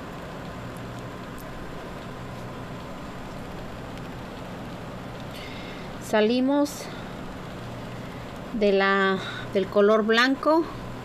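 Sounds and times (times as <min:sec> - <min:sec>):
background hiss: 0:00.0 - 0:11.0
low hum: 0:00.0 - 0:11.0.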